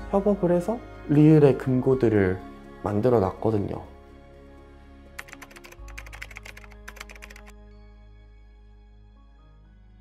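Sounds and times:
soft background music: 0:00.0 - 0:10.0
keyboard typing clicks: 0:05.2 - 0:07.5.

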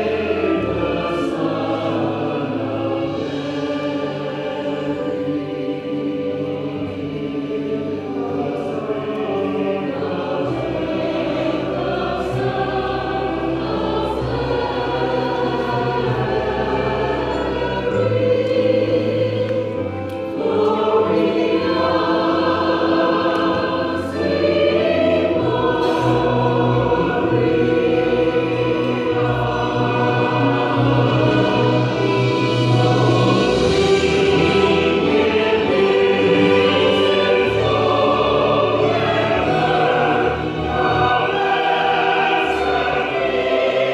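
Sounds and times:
mixed choir singing: 0:00.0 - 0:43.9.

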